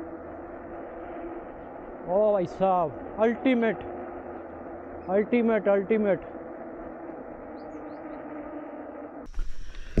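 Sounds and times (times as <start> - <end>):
bike tyres rolling on asphalt: 0.0 - 10.0.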